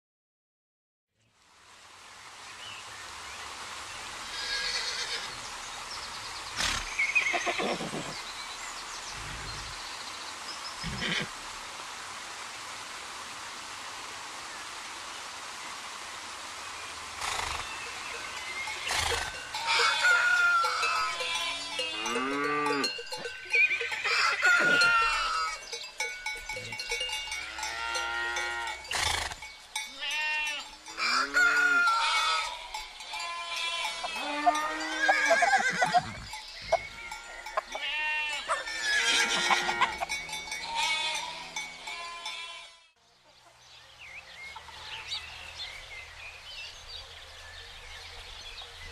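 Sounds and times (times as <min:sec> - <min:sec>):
steady outdoor hiss: 0:01.2 - 0:48.9
farm animals calling: 0:06.6 - 0:08.3, 0:10.8 - 0:11.4, 0:17.2 - 0:43.6.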